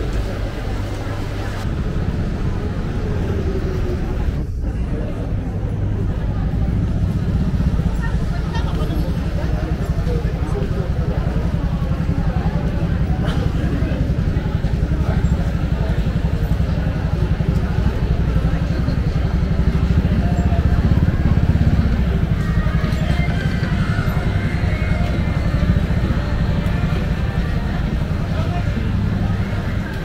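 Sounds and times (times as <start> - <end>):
people's voices: 0.0 - 30.0
motor scooter engine running: 0.2 - 30.0.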